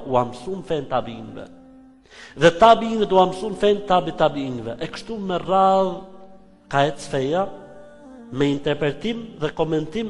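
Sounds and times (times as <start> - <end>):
man lecturing: 0.0 - 1.5, 2.3 - 6.1, 6.7 - 7.5, 8.3 - 10.0.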